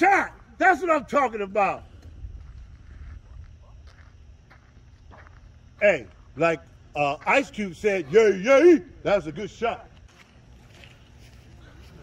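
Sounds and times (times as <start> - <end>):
low rumble on microphone: 1.8 - 6.9.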